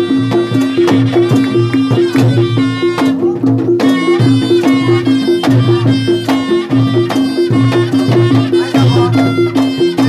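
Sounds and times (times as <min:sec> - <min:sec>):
drum strokes: 0:00.0 - 0:10.0
reedy held melody: 0:00.0 - 0:10.0.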